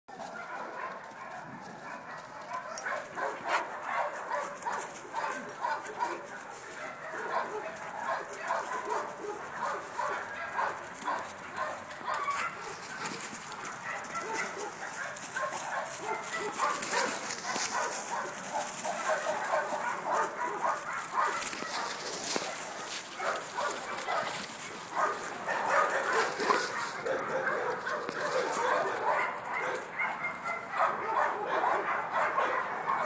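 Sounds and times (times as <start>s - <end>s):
dogs barking in play: 0.1s - 33.0s
dry leaves crackling underfoot: 3.9s - 29.3s.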